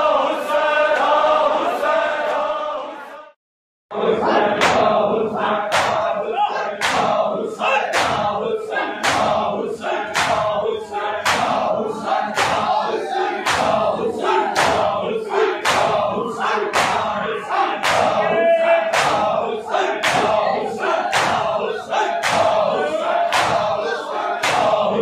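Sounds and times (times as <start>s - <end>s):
crowd chanting: 0.0s - 25.0s
hands slapping chests: 5.7s - 6.1s, 6.8s - 7.2s, 7.9s - 8.3s, 8.9s - 9.4s, 10.1s - 10.6s, 11.2s - 11.7s, 12.3s - 12.8s, 13.4s - 14.9s, 15.6s - 16.0s, 16.7s - 17.1s, 17.8s - 18.2s, 18.9s - 19.4s, 20.0s - 20.4s, 21.0s - 21.5s, 22.1s - 22.6s, 23.3s - 23.8s, 24.4s - 24.8s.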